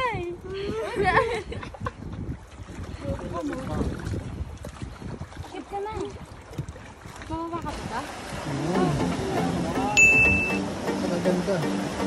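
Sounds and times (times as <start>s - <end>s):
wind rumble on microphone: 0.0s - 9.7s
water sloshing against boat hull: 0.0s - 11.0s.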